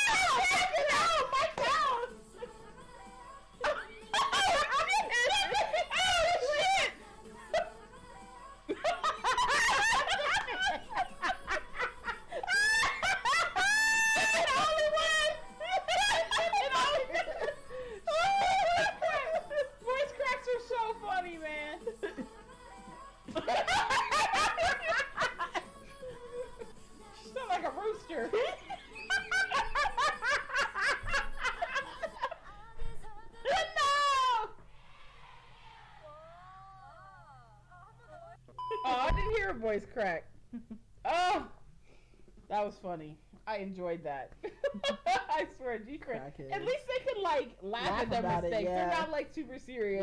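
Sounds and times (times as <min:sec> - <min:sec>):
people laughing: 0:00.0 - 0:02.1, 0:03.6 - 0:07.8, 0:08.7 - 0:20.5, 0:23.3 - 0:26.7, 0:27.4 - 0:32.6, 0:44.4 - 0:45.6.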